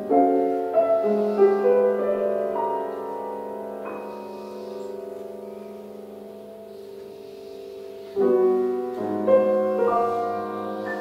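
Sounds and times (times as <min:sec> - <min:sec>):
grand piano chords: 0:00.0 - 0:11.0.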